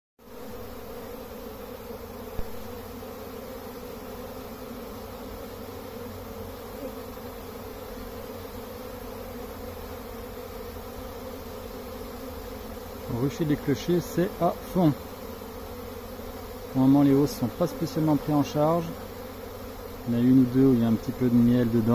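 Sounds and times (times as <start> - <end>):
honeybees humming: 0.2 - 21.9.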